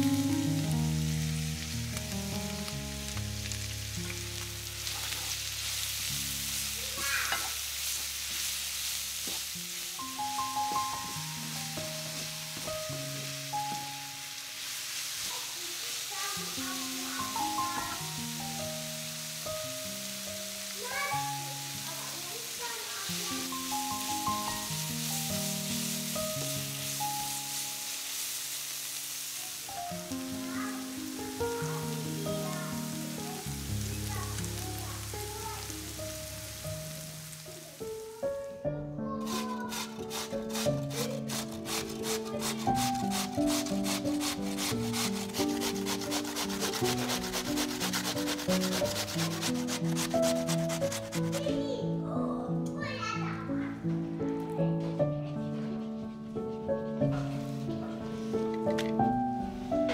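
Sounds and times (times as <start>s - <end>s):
soft background music: 0.0s - 7.0s, 7.6s - 15.2s, 16.0s - 59.9s
onions sizzling in a pan: 0.0s - 52.0s, 52.6s - 59.9s
potato grated on metal grater: 39.2s - 51.6s.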